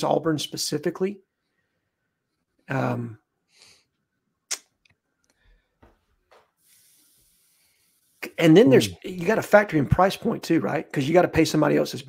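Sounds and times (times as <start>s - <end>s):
soft breath hiss: 6.3s - 9.0s.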